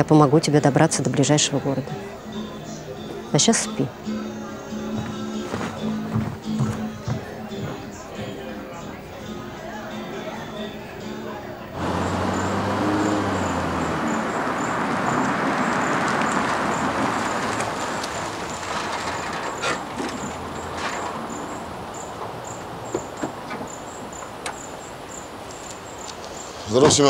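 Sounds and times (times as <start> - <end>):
crickets chirping: 0.0 - 27.0
car engine and tyre noise: 11.7 - 27.0.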